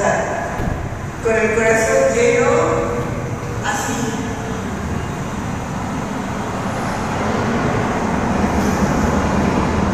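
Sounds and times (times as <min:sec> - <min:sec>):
street traffic rumble: 0:00.0 - 0:09.9.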